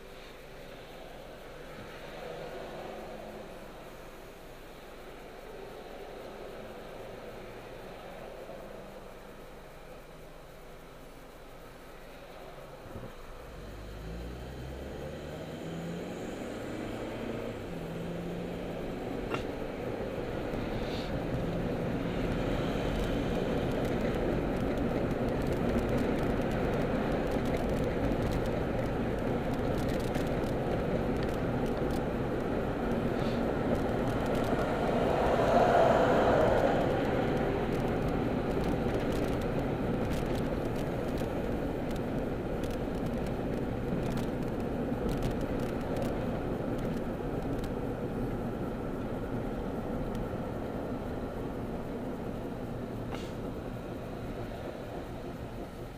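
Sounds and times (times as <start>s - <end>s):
car road and engine noise: 0.0s - 55.9s.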